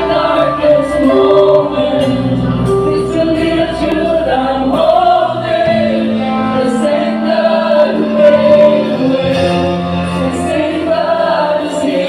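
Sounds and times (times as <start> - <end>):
deep bass: 0.0 - 11.5
band with guitars keyboard drums: 0.0 - 12.0
group singing worship song: 0.0 - 12.0.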